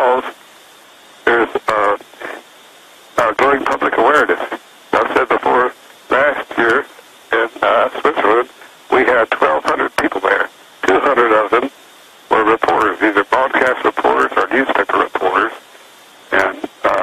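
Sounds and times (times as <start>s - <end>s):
man talking over telephone: 0.0s - 0.4s, 1.2s - 2.4s, 3.2s - 11.7s, 12.3s - 15.6s, 16.3s - 17.0s.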